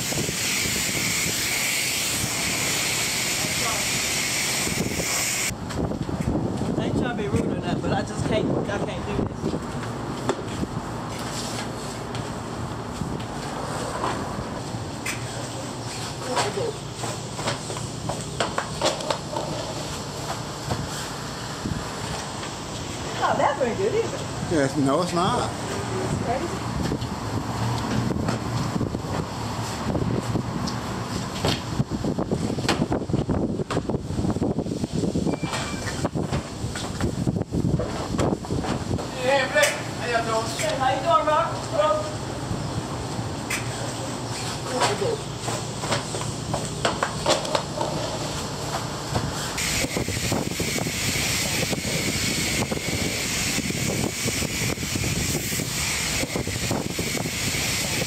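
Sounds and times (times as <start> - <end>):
wind buffeting microphone: 0.0 - 2.6, 4.6 - 9.8, 26.1 - 39.1, 49.6 - 58.0.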